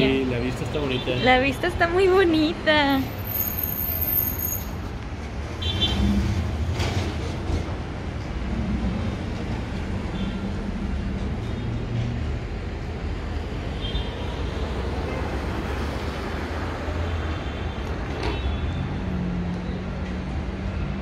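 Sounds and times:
cars passing: 0.0s - 21.0s.

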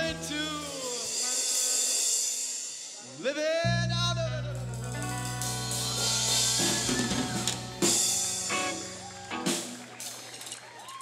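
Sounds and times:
live rock band: 0.0s - 11.0s.

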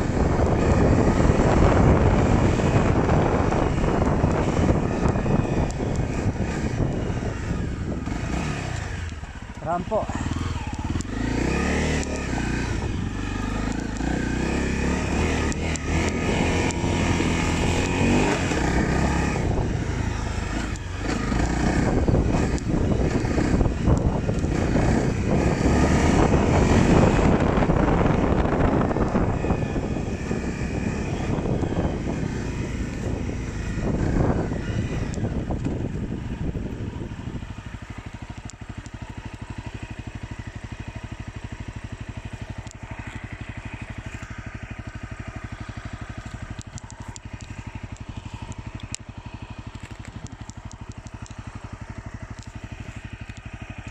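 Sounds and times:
dirt bike engine revving: 0.0s - 53.9s.

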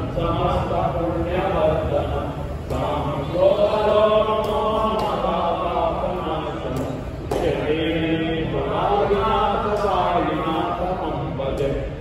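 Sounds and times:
devotional chanting: 0.0s - 12.0s
low steady hum: 0.0s - 12.0s.

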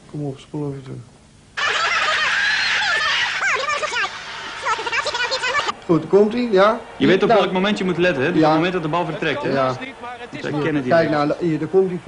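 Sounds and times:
sped-up garbled voices: 2.8s - 5.8s, 6.4s - 12.0s.

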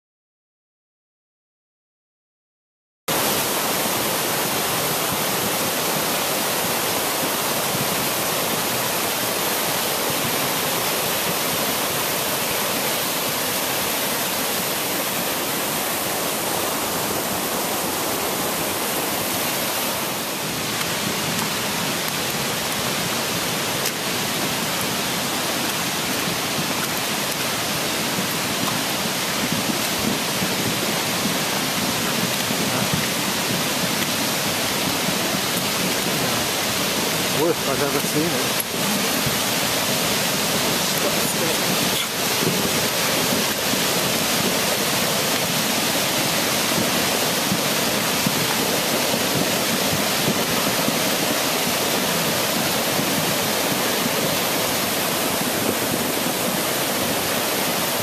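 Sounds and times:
floodwater rushing: 3.1s - 58.0s.

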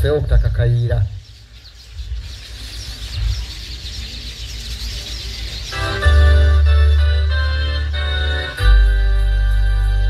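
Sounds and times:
birds chirping: 0.0s - 10.0s
keyboard music: 5.7s - 10.0s.

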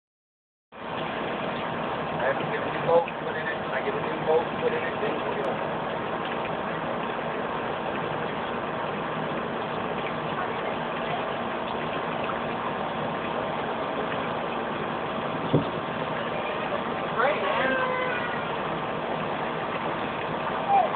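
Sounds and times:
fountain water spraying: 0.8s - 20.9s.

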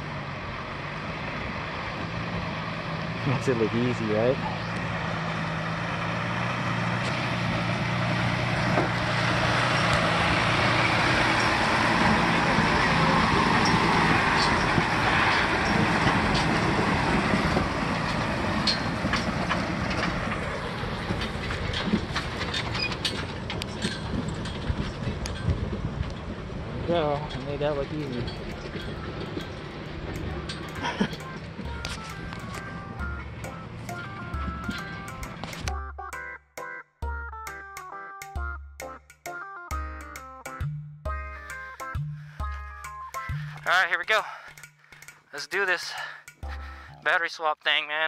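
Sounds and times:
truck engine running: 0.0s - 48.0s
scattered clicks: 28.0s - 36.2s, 42.8s - 47.2s
person laughing: 30.8s - 31.4s.

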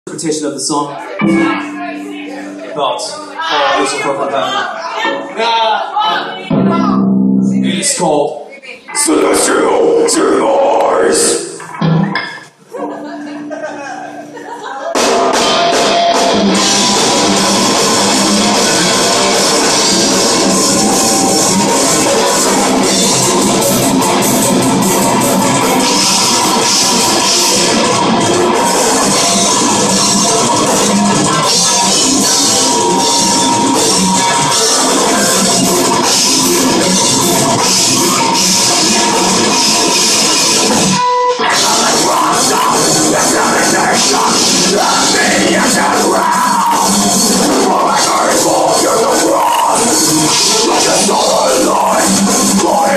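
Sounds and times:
metal band playing live: 1.1s - 2.6s, 6.0s - 8.0s, 9.0s - 13.6s, 14.9s - 52.9s
distorted electric guitars: 1.1s - 5.4s, 6.0s - 8.3s, 8.9s - 52.9s
drums: 6.4s - 7.8s, 8.9s - 12.9s, 14.3s - 52.9s.

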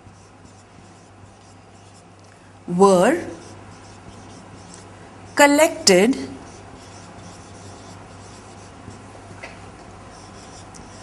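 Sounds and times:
marker scratching on whiteboard: 0.0s - 2.1s, 2.9s - 9.1s, 10.1s - 11.0s.

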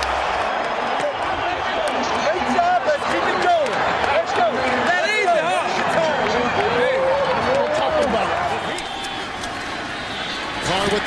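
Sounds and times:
men shouting and hollering: 0.0s - 11.0s
stadium crowd noise: 0.0s - 11.0s.

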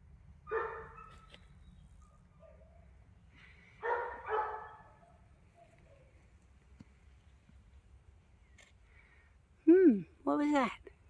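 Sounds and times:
dog barking: 0.5s - 1.2s, 3.8s - 5.3s.

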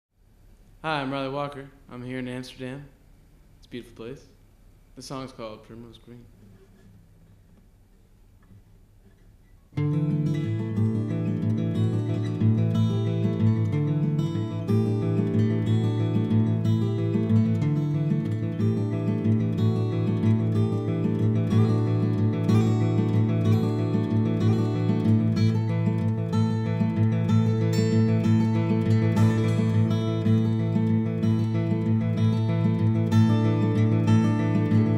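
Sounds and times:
acoustic guitar fingerpicking: 6.4s - 34.9s.

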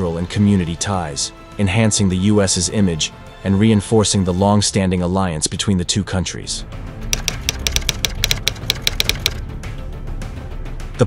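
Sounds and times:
background music: 0.0s - 11.0s
typewriter keys clacking: 7.2s - 9.4s.

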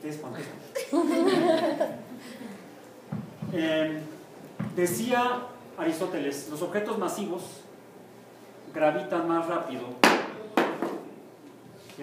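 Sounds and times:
small ball bouncing on hard floor: 3.1s - 3.6s.

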